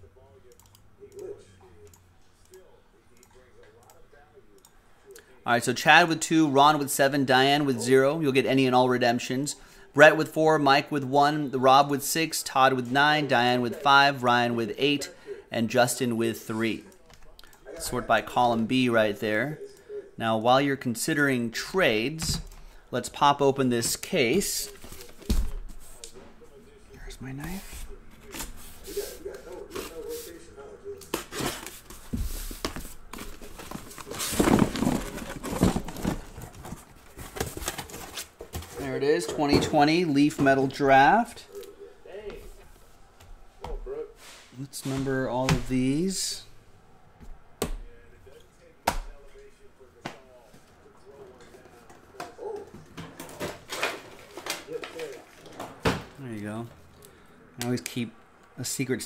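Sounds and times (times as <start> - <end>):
cardboard scraping and ripping: 33.3 - 38.3.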